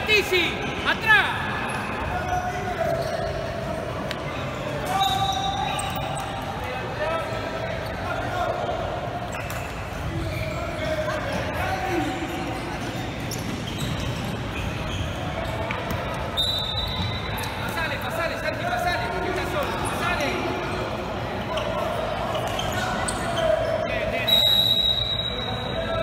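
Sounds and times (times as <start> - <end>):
referee's whistle blast: 16.4 - 17.3, 24.2 - 25.8.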